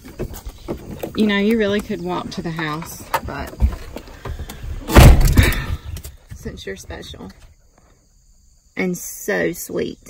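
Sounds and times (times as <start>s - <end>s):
truck door shutting thud: 4.8s - 5.8s.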